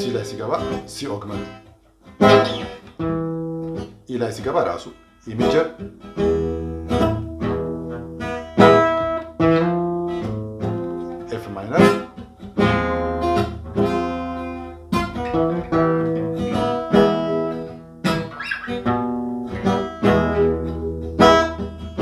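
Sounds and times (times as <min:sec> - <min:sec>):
acoustic guitar strummed: 0:00.0 - 0:22.0.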